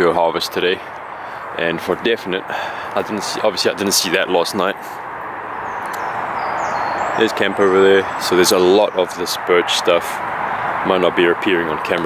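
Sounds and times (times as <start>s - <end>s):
rushing outdoor noise: 0.0s - 12.0s.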